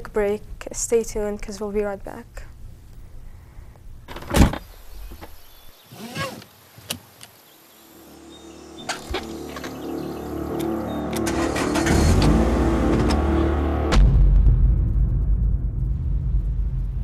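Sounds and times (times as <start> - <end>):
seat belt fastening: 4.1 - 7.0
car engine running: 8.1 - 14.1
sharp clicks: 10.5 - 11.4.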